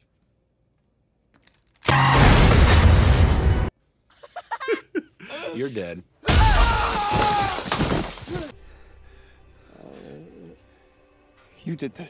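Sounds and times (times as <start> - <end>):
glass window shattering: 6.3 - 8.5.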